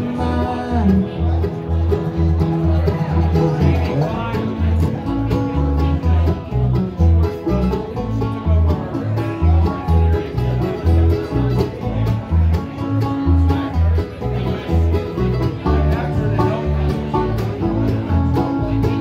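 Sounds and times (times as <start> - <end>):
bluegrass band playing: 0.0 - 19.0.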